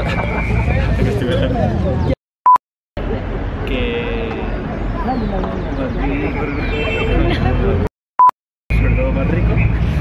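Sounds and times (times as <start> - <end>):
man and woman laughing: 0.0 - 1.7, 7.0 - 7.9.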